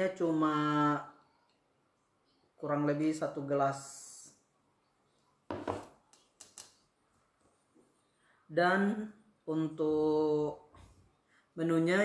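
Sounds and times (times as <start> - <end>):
bowl knocking on table: 5.5 - 5.9.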